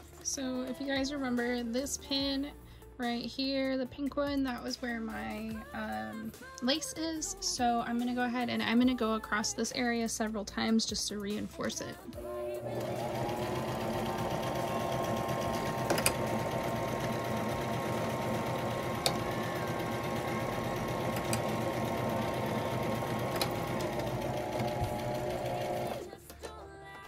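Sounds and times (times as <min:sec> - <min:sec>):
sewing machine running: 0:12.2 - 0:26.1.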